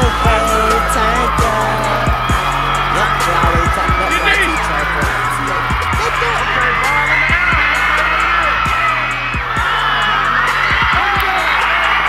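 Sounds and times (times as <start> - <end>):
background music with bass hits: 0.0 - 12.0.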